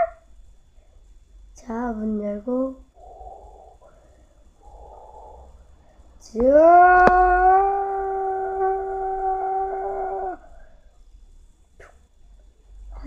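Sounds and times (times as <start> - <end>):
voice howling long oooo: 3.0 - 3.8, 4.6 - 5.6, 6.4 - 10.6.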